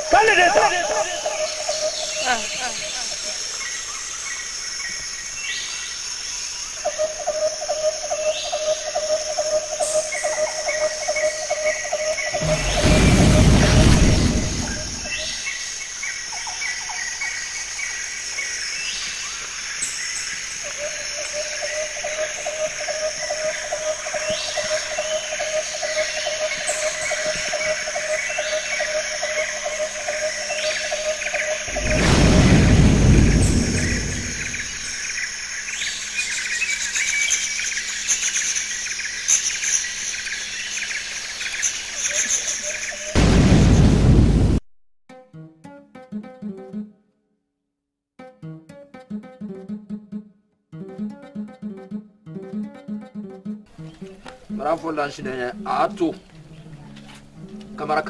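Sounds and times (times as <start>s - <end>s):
birds chirping: 0.0s - 5.8s, 18.9s - 43.2s
loud low rushing burst: 12.4s - 15.3s, 31.7s - 35.0s.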